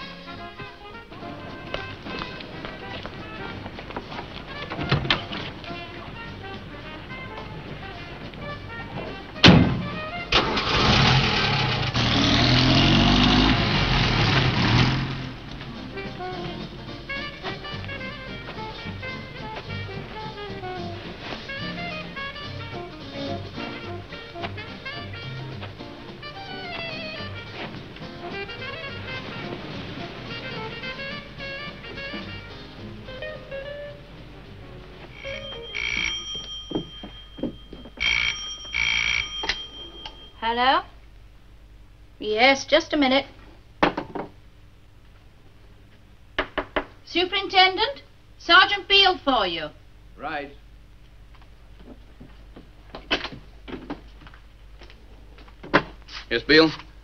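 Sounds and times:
film score music: 0.0s - 10.6s, 15.2s - 36.3s
telephone bell ringing: 35.2s - 40.5s.

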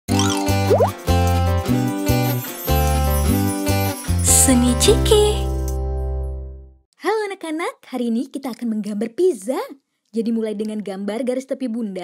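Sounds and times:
rising cartoon bloops: 0.1s - 1.0s.

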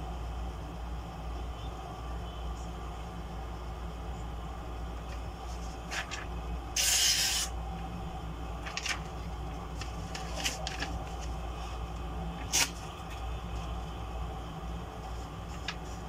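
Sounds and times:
paper rustling: 5.1s - 7.0s, 8.6s - 13.8s, 15.0s - 16.0s
knife slicing paper: 12.4s - 12.9s.

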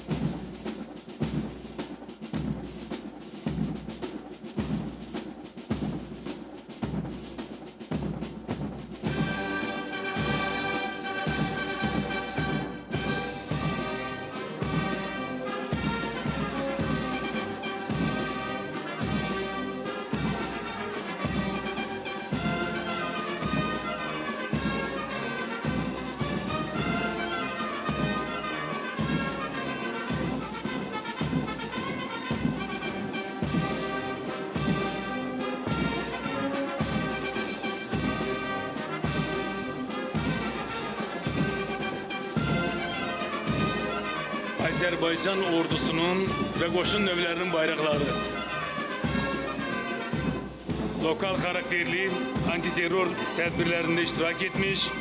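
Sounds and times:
brass band playing a march: 0.0s - 55.0s
steady drum beat: 0.0s - 55.0s
trumpets and trombones: 0.0s - 55.0s.

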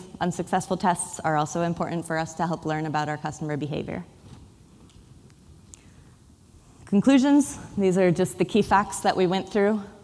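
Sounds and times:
woman speaking: 0.0s - 4.1s, 6.8s - 10.0s.

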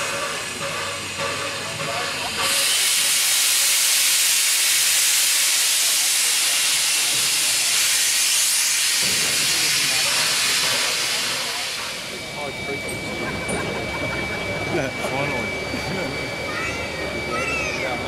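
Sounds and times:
steam locomotive venting steam: 0.0s - 18.0s.

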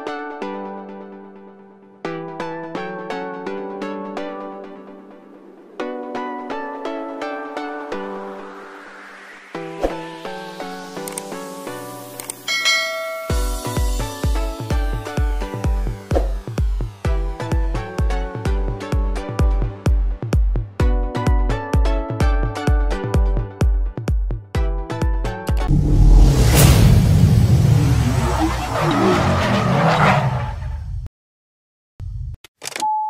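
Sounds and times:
notification bell chime: 12.5s - 13.7s
electronic music with heavy bass: 12.6s - 20.8s
swoosh: 25.6s - 29.7s
tyres skidding: 27.1s - 31.0s.

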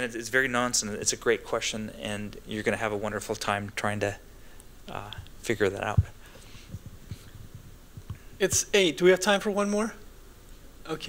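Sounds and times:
faint breathy hiss: 4.0s - 9.2s.

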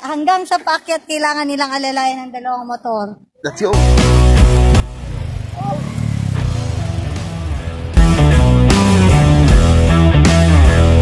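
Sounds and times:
man calling: 3.4s - 4.0s
motorcycle engine rumbling: 3.8s - 10.0s.

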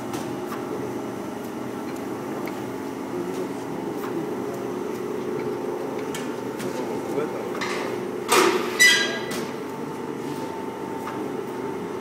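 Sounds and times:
vacuum pump hum: 0.0s - 12.0s.

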